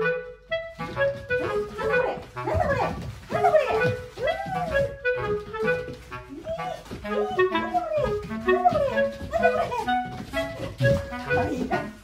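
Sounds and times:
clarinet music: 0.0s - 12.0s.

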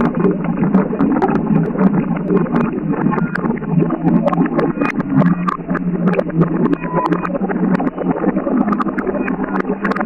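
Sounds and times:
water pouring and splashing: 0.0s - 10.0s.

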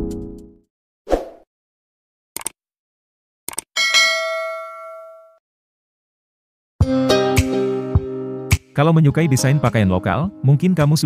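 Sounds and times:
bright bell chime: 3.8s - 5.4s.

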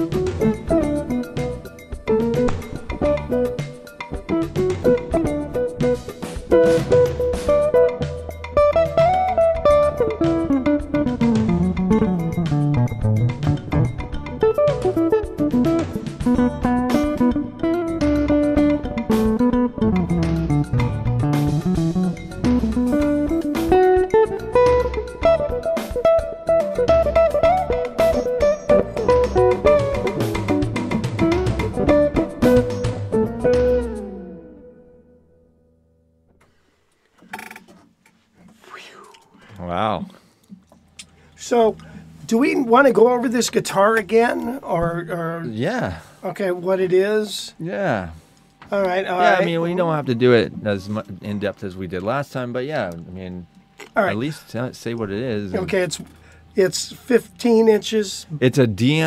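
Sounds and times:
low bass line: 6.6s - 23.5s.

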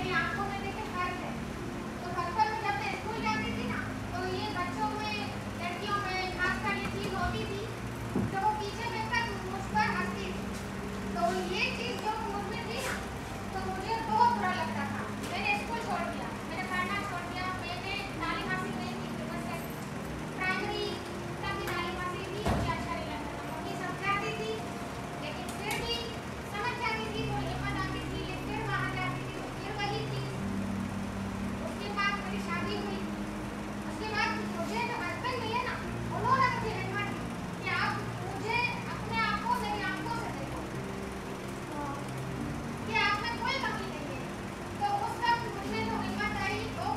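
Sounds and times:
children chattering: 0.0s - 30.6s, 31.5s - 41.0s, 41.6s - 46.9s
low hum: 0.0s - 46.9s.

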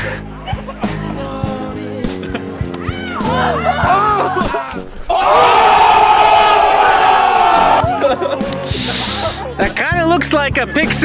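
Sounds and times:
group yelling and cheering: 2.6s - 9.5s.

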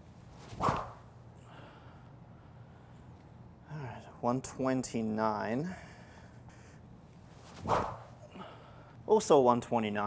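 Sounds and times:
training stick whooshing through air: 0.3s - 1.1s, 7.3s - 8.2s.

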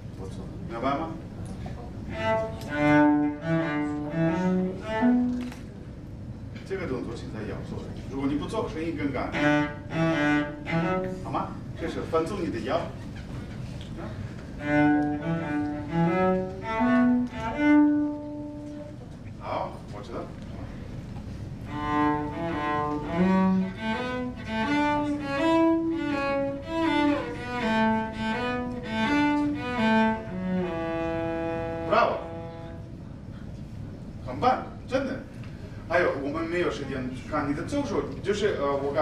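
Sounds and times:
bowed cello melody: 1.8s - 5.8s, 8.7s - 12.0s, 14.4s - 19.2s, 21.4s - 33.2s.

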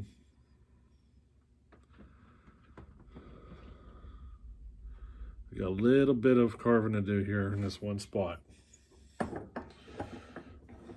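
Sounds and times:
soft breathing: 0.0s - 5.8s, 8.4s - 10.9s.

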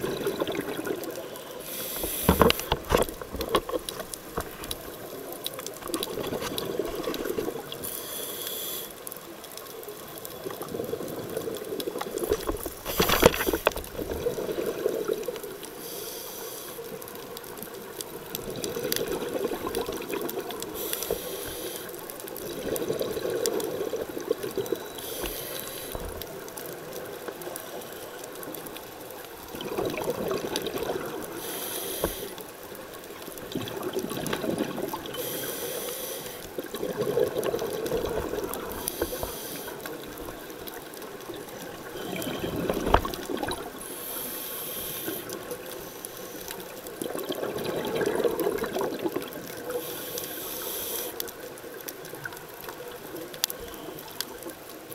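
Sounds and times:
exhaled bubbles underwater: 0.0s - 1.3s, 2.2s - 7.8s, 13.4s - 15.8s, 18.0s - 21.0s, 22.3s - 27.4s, 29.3s - 31.5s, 32.9s - 35.8s, 36.4s - 44.0s, 46.6s - 49.9s
regulator inhale hiss: 1.6s - 2.7s, 7.7s - 9.2s, 12.2s - 13.8s, 15.7s - 17.0s, 20.7s - 22.0s, 25.0s - 26.2s, 31.3s - 32.5s, 35.1s - 36.6s, 38.7s - 39.9s, 43.8s - 46.8s, 49.6s - 51.3s.

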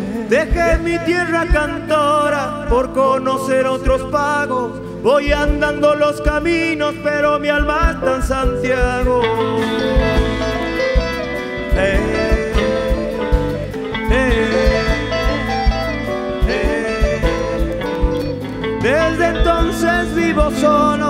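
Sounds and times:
drums: 0.0s - 21.0s
electric bass: 0.0s - 21.0s
electric guitar sliding lines: 9.2s - 21.0s.

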